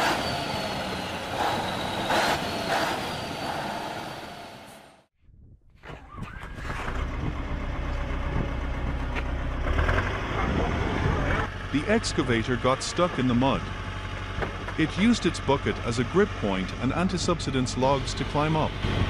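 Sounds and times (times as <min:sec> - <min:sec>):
diesel truck engines running: 0:00.0 - 0:05.1, 0:06.4 - 0:19.0
excavator diesel engine rumble: 0:06.7 - 0:19.0.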